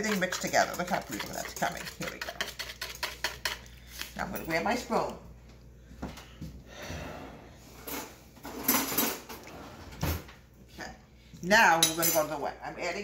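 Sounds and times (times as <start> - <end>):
dishes and utensils clattering: 7.8 - 10.2.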